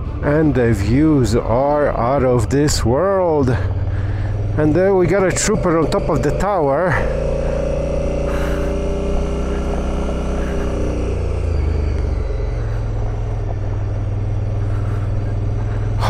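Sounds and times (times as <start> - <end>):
motorcycle engine under load: 0.0 - 16.0.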